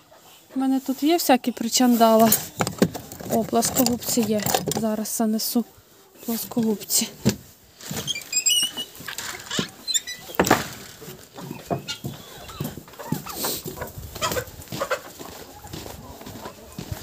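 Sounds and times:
chickens clucking and calling: 0.0s - 17.0s
scuffing footsteps: 11.0s - 17.0s.

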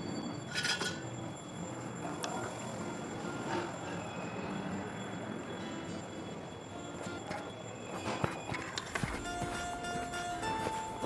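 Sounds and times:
faint high steady tones: 0.0s - 11.0s.

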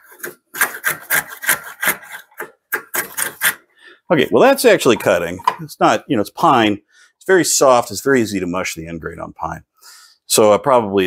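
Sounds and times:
hand plane scraping wood: 0.0s - 3.6s.

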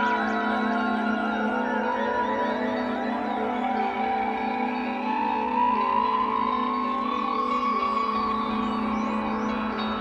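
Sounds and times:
live band playing ambient drone: 0.0s - 10.0s.

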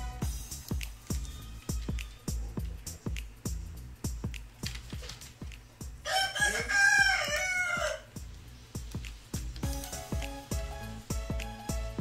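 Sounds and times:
background music with steady beat: 0.0s - 12.0s
rooster crowing: 6.0s - 8.2s.

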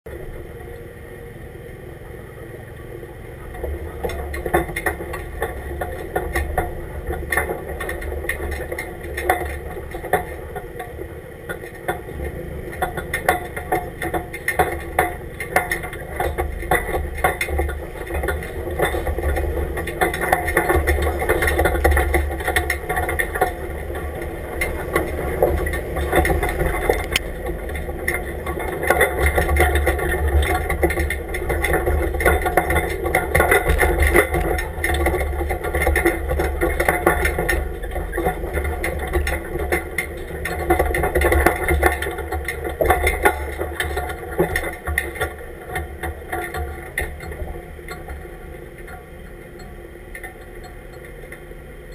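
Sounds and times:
truck engine running at low speed: 0.1s - 51.9s
tyres crawling over gravel: 0.1s - 51.9s
rattling clatter: 3.4s - 51.9s.

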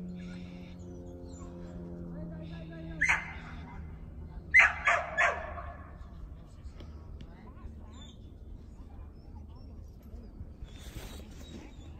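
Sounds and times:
dog barking: 3.0s - 6.0s.

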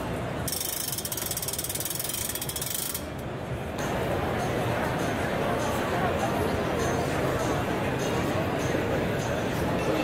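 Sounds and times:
high-pitched ratchet-like clicking: 0.5s - 3.2s.

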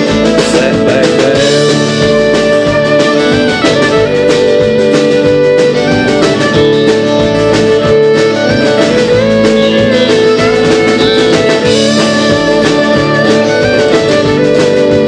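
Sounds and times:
fiddle melody: 0.0s - 15.0s
steady beat: 0.0s - 15.0s
strummed acoustic guitar: 0.0s - 15.0s.

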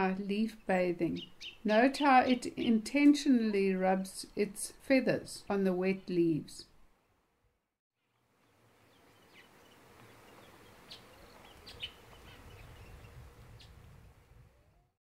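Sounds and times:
faint outdoor background: 0.0s - 15.0s
high bird chirps: 10.3s - 13.8s.

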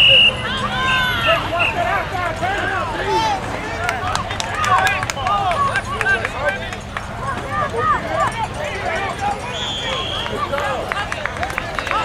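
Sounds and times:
crowd of voices shouting: 0.0s - 12.0s.

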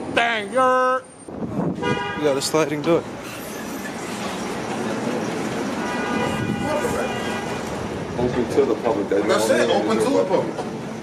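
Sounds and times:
indoor concourse rumble and hiss: 2.6s - 6.7s.

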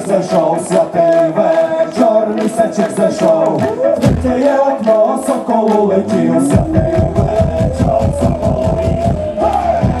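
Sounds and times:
long held rising note: 6.1s - 9.2s.

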